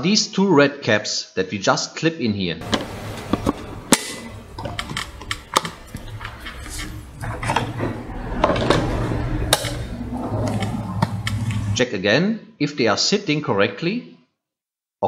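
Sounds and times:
low steady hum: 0:02.6 - 0:11.8
plastic caps clicking shut: 0:02.7 - 0:05.8.

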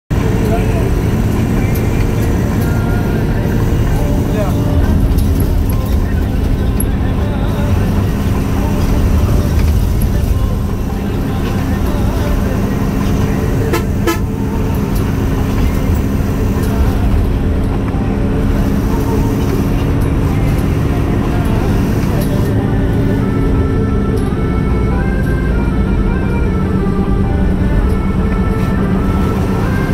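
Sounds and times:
engine and road noise in cab: 0:00.1 - 0:29.9
horn toots: 0:13.1 - 0:16.0.

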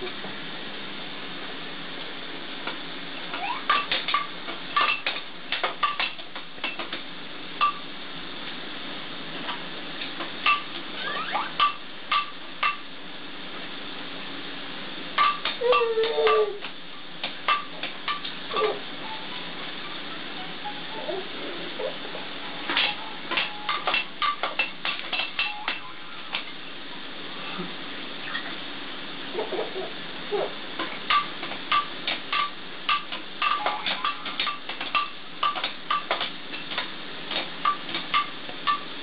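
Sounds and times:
plastic toys clicking and clattering: 0:03.3 - 0:07.0, 0:22.7 - 0:26.5, 0:30.8 - 0:38.9
baby vocalizing: 0:15.6 - 0:16.6, 0:20.9 - 0:22.2, 0:29.3 - 0:30.6.

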